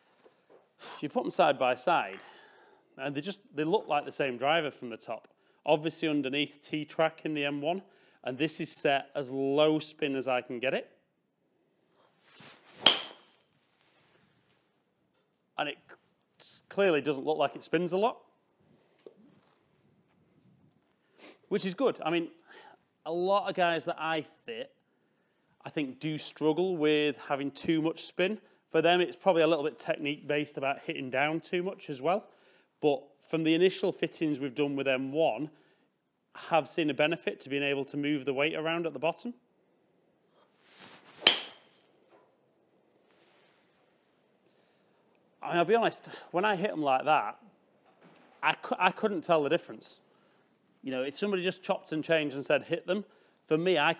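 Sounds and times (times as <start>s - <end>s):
golf club swish: 12.0s - 14.3s, 40.4s - 42.2s
golf ball impact crack: 12.8s - 13.4s, 41.2s - 41.8s.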